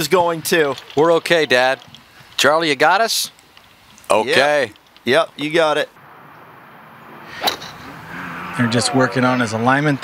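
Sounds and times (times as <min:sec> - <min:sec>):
golf club striking ball: 0:07.2 - 0:08.0.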